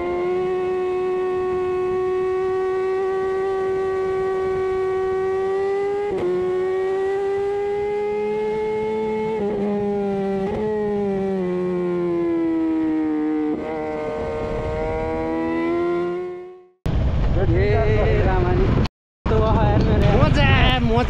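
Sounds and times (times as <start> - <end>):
motorcycle engine whine: 0.0 - 21.0.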